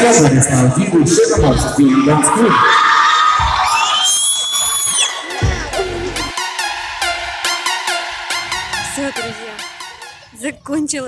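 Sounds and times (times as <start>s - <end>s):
rising synth sweep: 4.8s - 10.3s
heavy bass beat: 5.1s - 10.5s.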